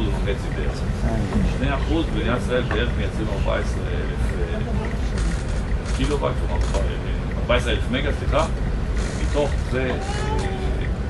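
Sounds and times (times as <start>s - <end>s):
low background rumble: 0.0s - 11.0s
person speaking: 0.8s - 2.1s.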